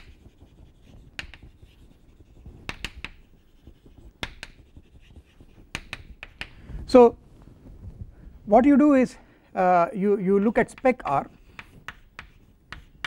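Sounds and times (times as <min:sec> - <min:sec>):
chalk tapping on blackboard: 0:00.0 - 0:06.6, 0:10.3 - 0:13.0.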